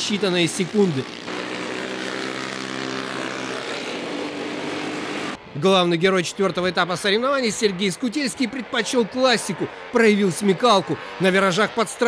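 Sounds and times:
kart engines buzzing: 0.0s - 12.0s.

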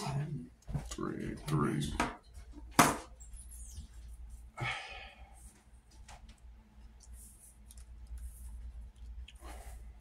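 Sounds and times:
soft brushing: 5.4s - 9.9s.

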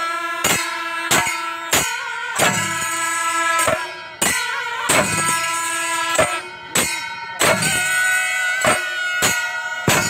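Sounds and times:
cymbals: 0.0s - 10.0s
double-reed pipes: 0.0s - 10.0s
drum strokes: 0.4s - 10.0s.

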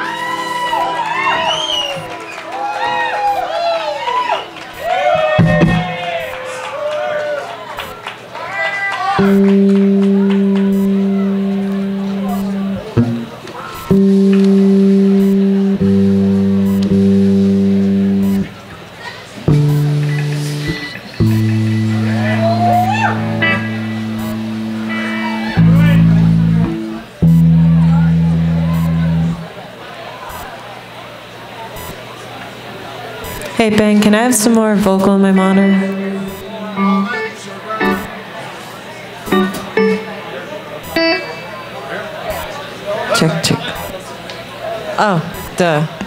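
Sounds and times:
sliding higher note: 9.2s - 18.7s, 19.5s - 29.5s, 35.0s - 38.4s
band holding low note: 9.2s - 29.6s, 33.7s - 38.6s
indistinct talking over loudspeakers: 9.2s - 46.0s.

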